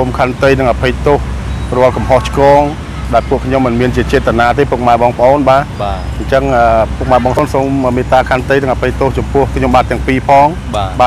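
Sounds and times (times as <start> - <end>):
man talking: 0.0 - 11.0
road traffic rumble: 0.0 - 11.0.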